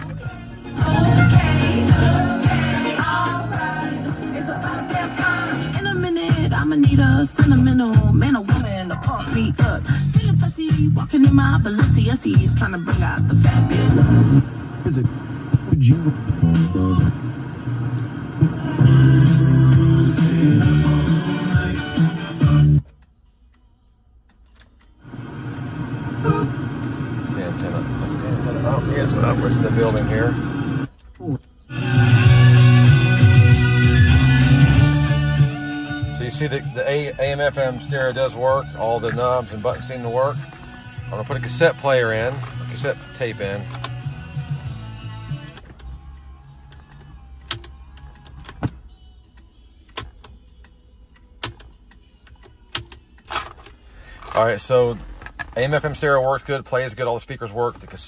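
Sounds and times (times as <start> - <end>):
car radio music: 0.0 - 58.0
radio station hiss: 25.1 - 30.9.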